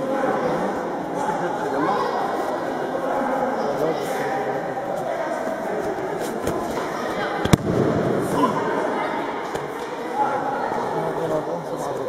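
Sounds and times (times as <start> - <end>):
murmur of onlookers chatting: 0.0 - 12.0.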